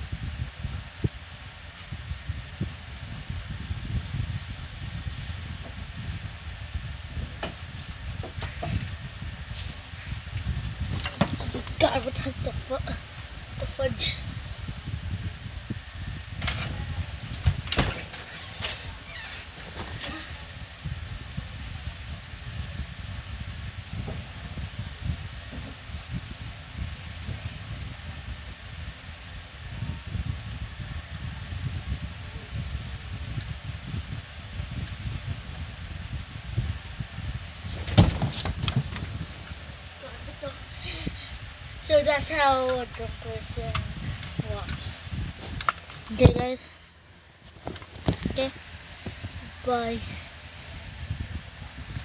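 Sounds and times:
steady low rumble: 0.0 - 52.0
footsteps bumps and knocks: 10.8 - 12.0, 37.7 - 39.5
thumps: 10.9 - 11.9, 37.8 - 39.2.

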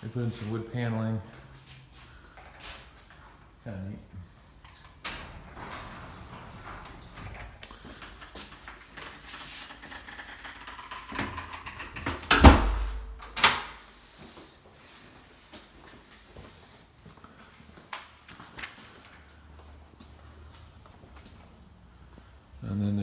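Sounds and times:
door shutting with a thud: 4.8 - 8.7.

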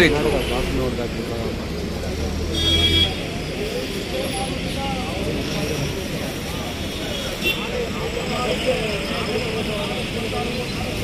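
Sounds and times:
faint voices: 0.0 - 11.0
vehicle engine rumble: 0.0 - 11.0.

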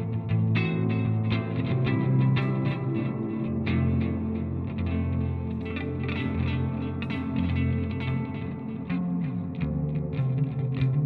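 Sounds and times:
electric guitar clean tone: 0.0 - 11.0.

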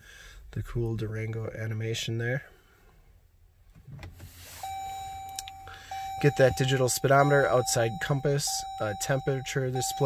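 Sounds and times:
steady high warning tone: 4.6 - 10.0.

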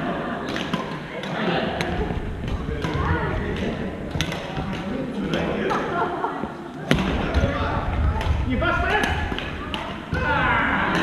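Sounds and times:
chatter of players: 0.0 - 11.0
rackets striking shuttlecock: 0.4 - 5.9, 6.9 - 10.3.

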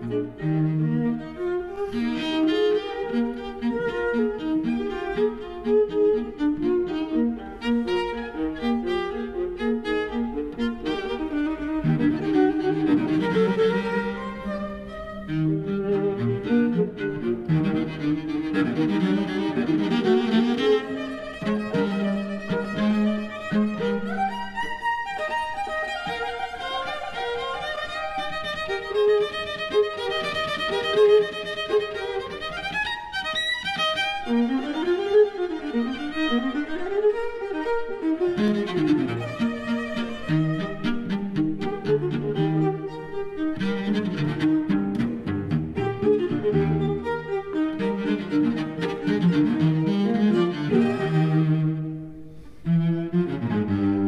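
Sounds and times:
cello: 0.0 - 54.0
violin: 0.0 - 54.0.

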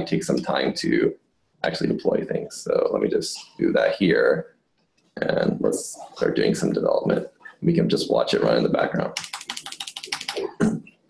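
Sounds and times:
laptop keyboard typing: 9.1 - 10.5.

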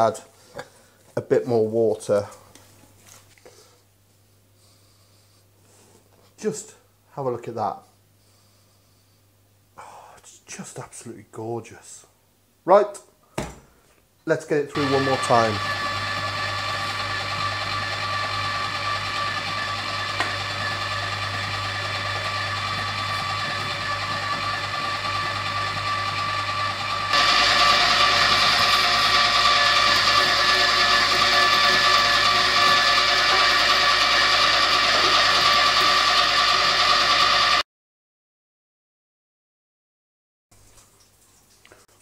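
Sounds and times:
electric meat mincer running: 14.7 - 37.6.

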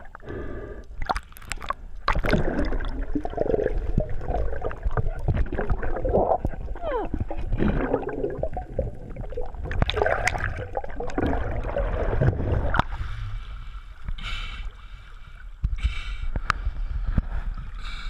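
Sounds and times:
underwater gurgling and sloshing: 0.0 - 18.0.

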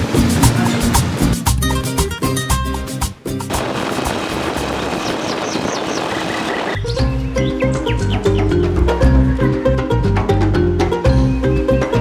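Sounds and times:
plucked and struck background music: 0.0 - 3.6, 6.8 - 12.0
bird chirping: 4.8 - 8.6.

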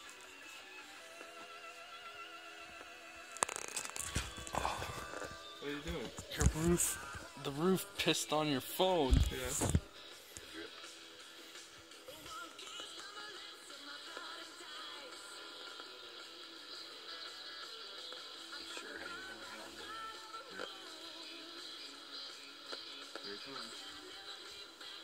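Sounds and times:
radio music playing quietly: 0.0 - 25.0.

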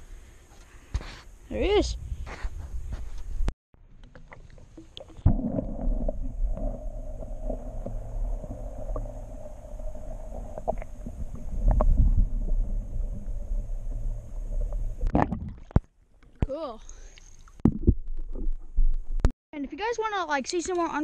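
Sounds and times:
muffled underwater water rumble: 4.3 - 15.8
faint hum: 5.3 - 15.2.

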